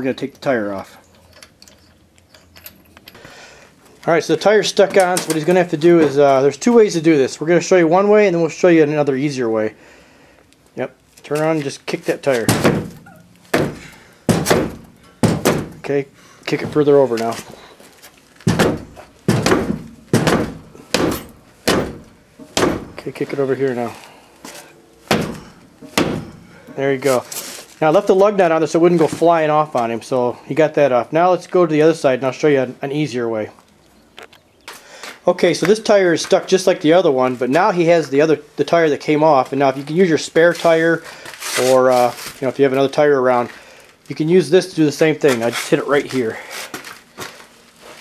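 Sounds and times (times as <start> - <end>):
metallic clicks of lug nuts: 0.4 - 3.3
shoe kicking a tyre: 18.5 - 23.0, 25.1 - 26.4.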